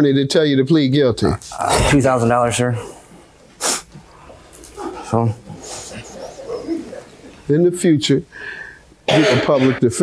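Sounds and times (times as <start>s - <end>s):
short sharp breath: 8.3s - 8.9s.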